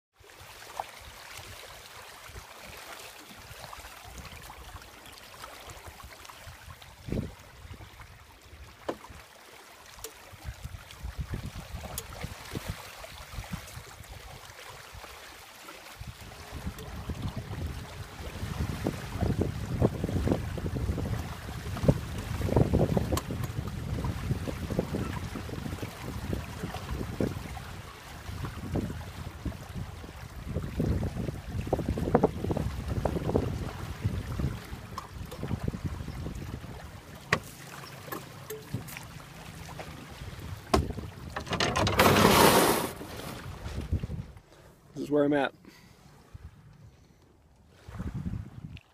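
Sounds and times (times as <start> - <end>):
small waves slapping against hull: 0.2 - 44.6
wind gusting across microphone: 16.0 - 37.0, 40.1 - 44.4, 47.8 - 48.8
knocks against canoe hull: 37.3 - 39.0, 40.7 - 43.4
canoe scraping on gravel: 40.8 - 44.2.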